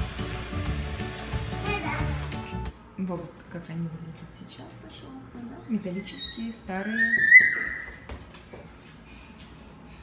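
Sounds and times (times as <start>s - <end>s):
toddler squealing: 5.7s - 8.0s.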